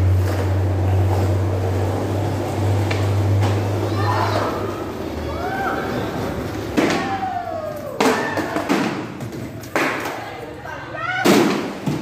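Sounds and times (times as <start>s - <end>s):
skateboard wheels rolling on concrete: 0.0s - 12.0s.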